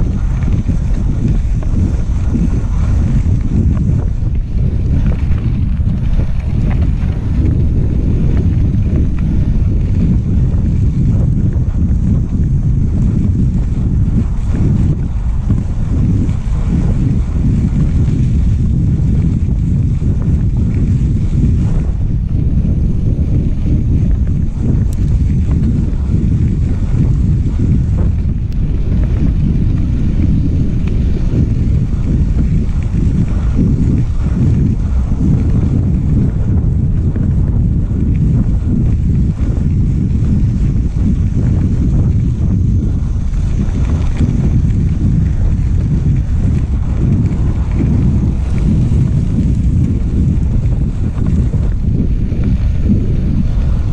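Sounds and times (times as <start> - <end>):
wind buffeting microphone: 0.0 - 53.9.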